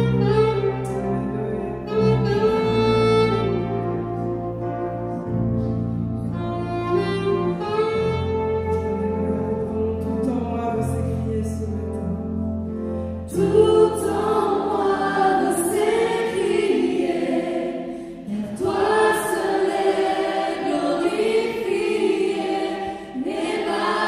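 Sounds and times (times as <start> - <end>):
group singing a worship song: 13.3 - 24.0.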